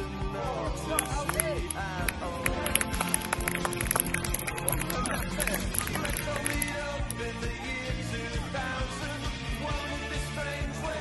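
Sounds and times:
song with singing over a beat: 0.0s - 11.0s.

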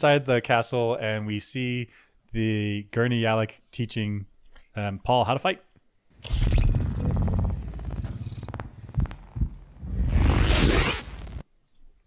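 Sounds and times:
pulsing electronic hum: 6.2s - 11.4s.

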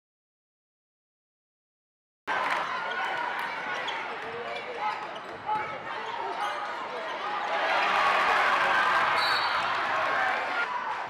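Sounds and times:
crowd chatter: 2.3s - 11.0s.

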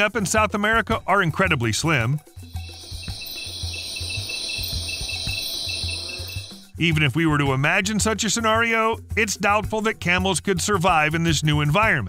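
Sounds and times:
insects chirping in a trill: 2.3s - 6.8s
low pulsing beat: 2.5s - 6.8s.

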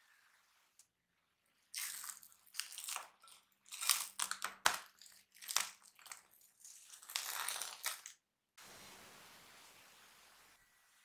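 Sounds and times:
cling film crinkling: 3.7s - 8.2s.

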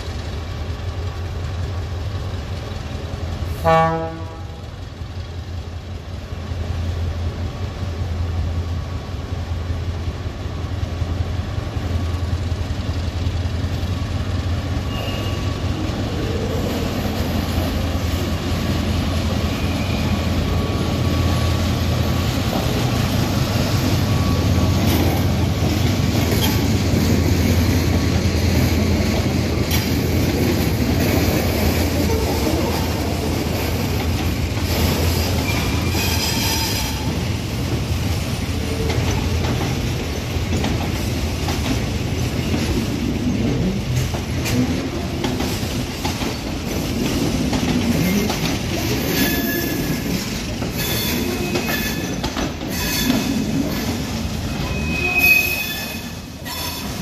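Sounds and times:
diesel locomotive engine drone: 0.0s - 57.0s
high wheel squeals: 14.8s - 16.5s, 19.5s - 21.5s, 35.0s - 37.1s, 49.0s - 53.9s, 54.5s - 57.0s.

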